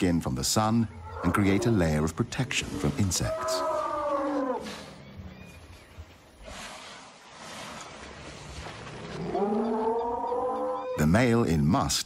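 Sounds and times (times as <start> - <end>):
elephant trumpeting: 1.0 - 5.0.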